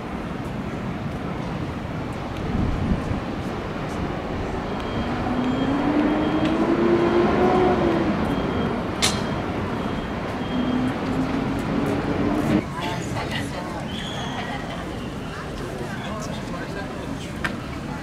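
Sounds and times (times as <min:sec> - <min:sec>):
vehicle engine passing by: 0:05.0 - 0:09.0.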